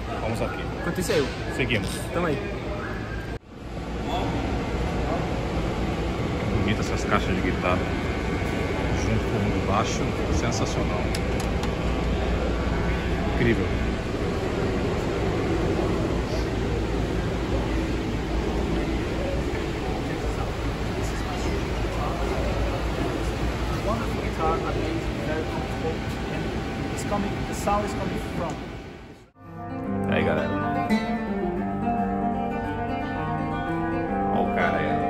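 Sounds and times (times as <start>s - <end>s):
low rumble of empty venue: 0.0s - 29.4s
classical guitar playing: 29.4s - 35.0s.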